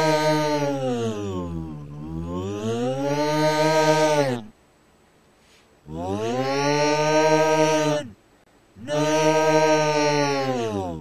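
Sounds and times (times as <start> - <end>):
creature yelling in a low voice: 0.0 - 4.5, 5.9 - 8.2, 8.8 - 11.0.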